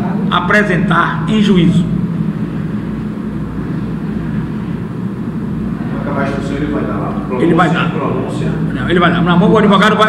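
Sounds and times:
room hum and rumble: 0.0s - 10.0s.

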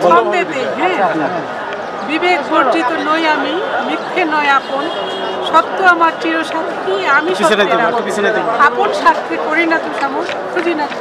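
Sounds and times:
background voices chattering: 0.0s - 11.0s
woman talking: 2.0s - 5.0s, 5.6s - 7.7s, 8.6s - 11.0s.

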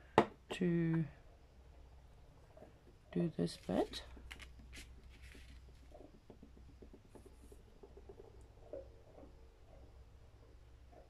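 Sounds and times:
paper rustling: 3.5s - 5.9s.

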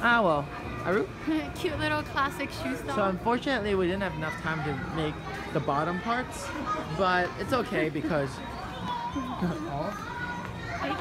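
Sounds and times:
children's voices: 3.7s - 11.0s.

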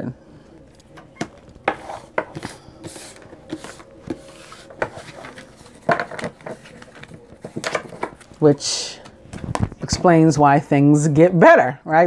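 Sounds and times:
cards rustling: 0.5s - 8.4s.

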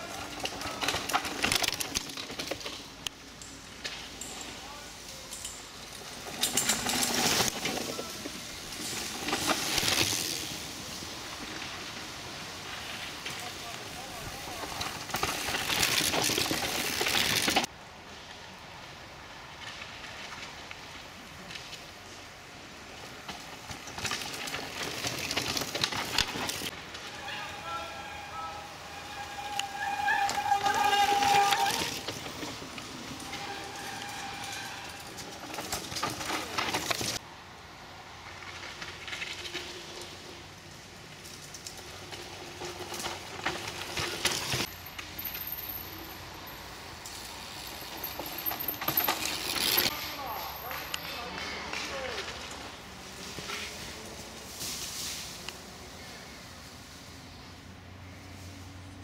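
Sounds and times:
bikes rattling: 0.0s - 59.0s
mountain bikes passing on dirt: 0.0s - 59.0s
people calling out: 27.1s - 32.0s.

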